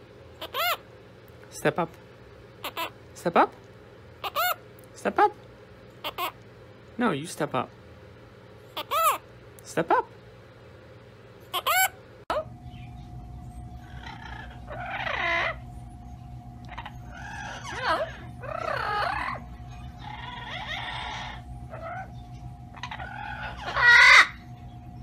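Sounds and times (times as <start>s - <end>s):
steady background hum: 0.0s - 25.0s
parakeet squawks: 0.4s - 0.8s, 2.6s - 3.0s, 4.2s - 4.6s, 6.0s - 6.4s, 8.7s - 9.3s, 11.5s - 12.5s, 13.8s - 15.6s, 16.7s - 24.5s
parrot calls: 0.4s - 0.9s, 2.6s - 3.0s, 4.2s - 4.7s, 6.0s - 6.4s, 8.7s - 9.3s, 11.4s - 12.6s, 13.7s - 15.8s, 16.6s - 24.7s.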